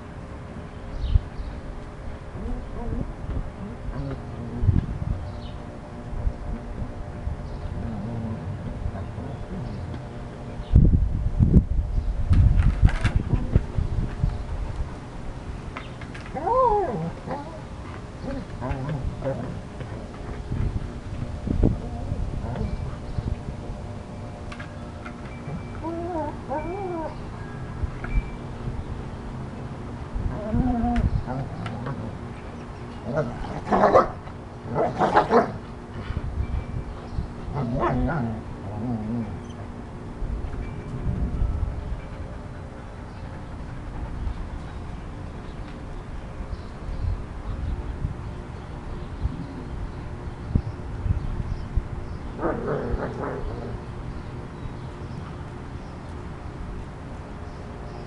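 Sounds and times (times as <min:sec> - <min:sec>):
dogs growling: 0:02.4 - 0:04.8, 0:07.7 - 0:09.9, 0:18.2 - 0:20.0, 0:33.0 - 0:35.6, 0:37.5 - 0:39.5, 0:52.4 - 0:53.9
dog whining: 0:16.3 - 0:17.6, 0:25.4 - 0:27.3
dog wavering vocal sound: 0:25.8 - 0:27.2.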